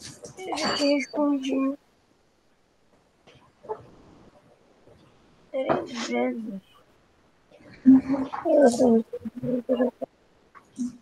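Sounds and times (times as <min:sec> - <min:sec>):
person speaking over video call: 0:05.6 - 0:06.6.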